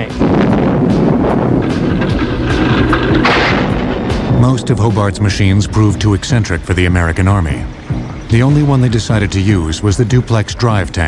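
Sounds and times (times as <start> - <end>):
tank engine rumble: 0.0 - 11.0.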